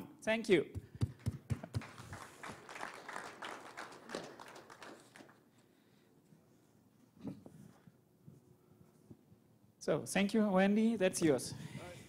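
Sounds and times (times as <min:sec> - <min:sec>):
audience applauding: 0:01.1 - 0:05.5.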